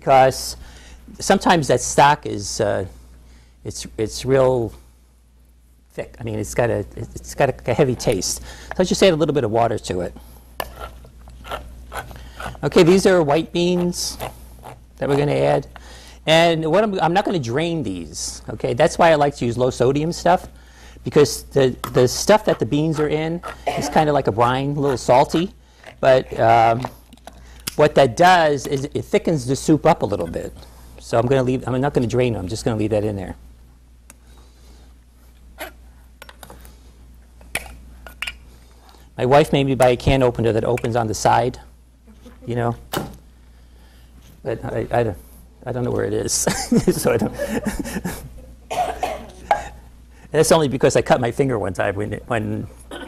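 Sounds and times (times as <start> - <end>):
low steady hum: 0.0 - 53.0
can opener working around can rim: 10.6 - 15.3.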